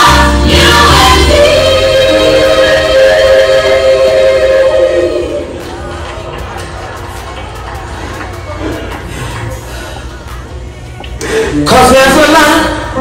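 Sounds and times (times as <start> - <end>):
gospel choir singing: 0.0 - 5.9.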